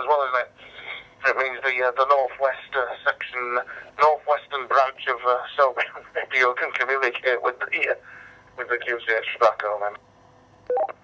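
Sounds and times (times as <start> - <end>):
man talking over radio speaker: 0.0 - 0.6, 1.2 - 8.0, 8.6 - 10.0.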